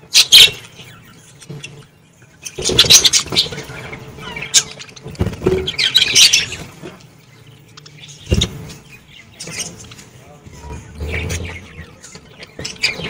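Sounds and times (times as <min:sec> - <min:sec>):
budgies chirping and chattering: 0:00.0 - 0:13.0.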